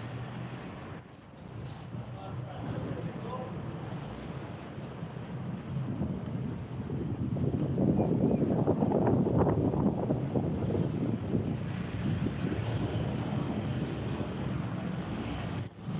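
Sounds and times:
vehicles passing: 0:00.0 - 0:15.9
wind buffeting microphone: 0:05.4 - 0:15.6.

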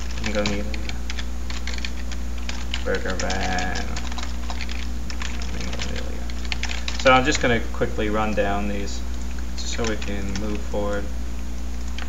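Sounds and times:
keyboard keys clicking: 0:00.0 - 0:07.5, 0:09.6 - 0:11.0
steady low hum: 0:00.0 - 0:12.0.

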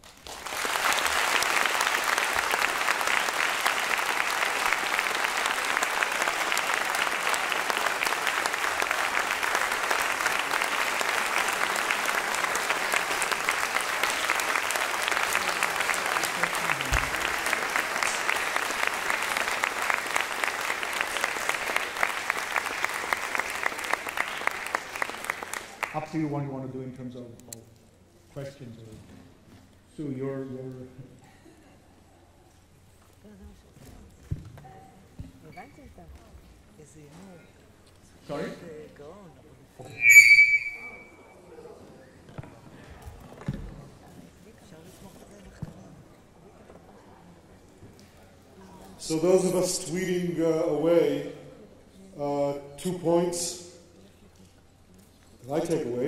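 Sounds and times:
audience applauding: 0:00.0 - 0:26.2.

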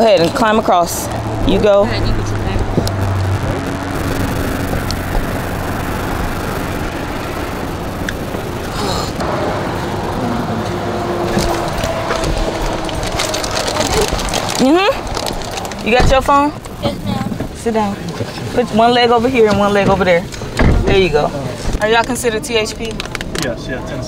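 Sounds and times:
road traffic rush: 0:00.0 - 0:24.0.

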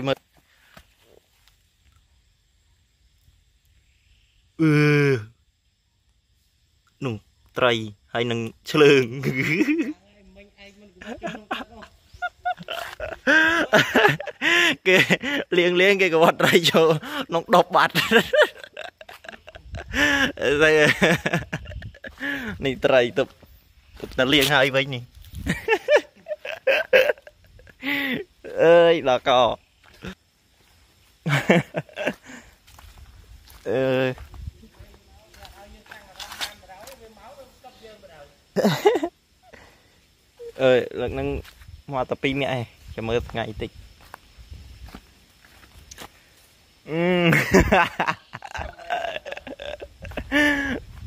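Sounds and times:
man laughing: 0:09.0 - 0:10.0, 0:11.0 - 0:22.9, 0:25.4 - 0:29.0, 0:31.2 - 0:32.6, 0:38.6 - 0:39.7, 0:46.9 - 0:51.0.

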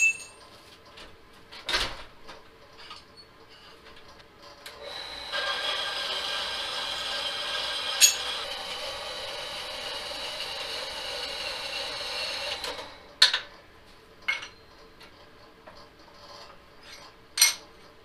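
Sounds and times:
band saw cutting metal: 0:04.8 - 0:13.2.

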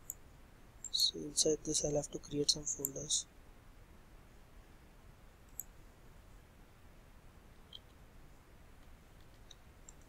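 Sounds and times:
computer mouse click: 0:05.5 - 0:05.7.

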